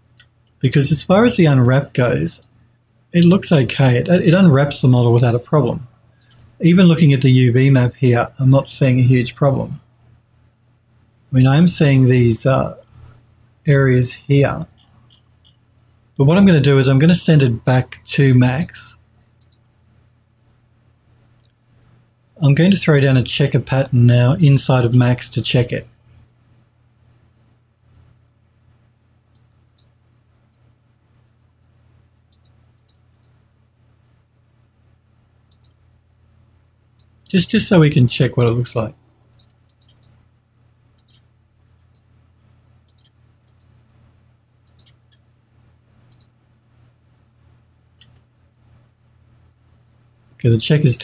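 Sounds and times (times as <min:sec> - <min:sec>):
low steady hum: 0:00.0 - 0:51.0
computer mouse clicks: 0:06.1 - 0:06.5, 0:19.0 - 0:19.7, 0:28.9 - 0:30.7, 0:32.3 - 0:33.4, 0:35.5 - 0:35.8, 0:39.4 - 0:40.2, 0:41.0 - 0:42.1, 0:42.9 - 0:43.8, 0:44.6 - 0:45.3, 0:46.1 - 0:46.4, 0:48.0 - 0:48.3.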